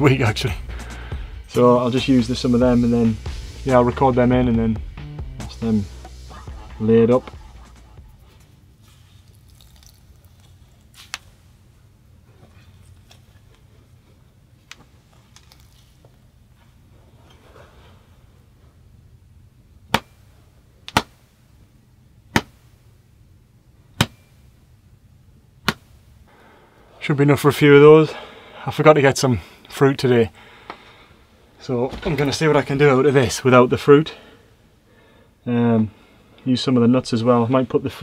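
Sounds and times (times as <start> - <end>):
peanut shells cracking: 9.2 - 11.3, 15.2 - 16.1.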